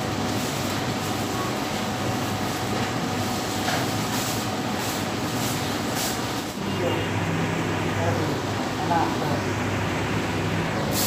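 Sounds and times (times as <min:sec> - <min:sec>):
shop background roar: 0:00.0 - 0:11.0.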